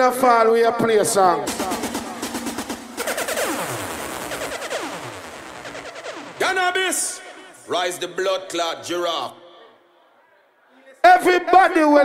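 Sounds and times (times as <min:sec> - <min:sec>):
synthesized falling pitch sweeps: 0:01.5 - 0:07.7.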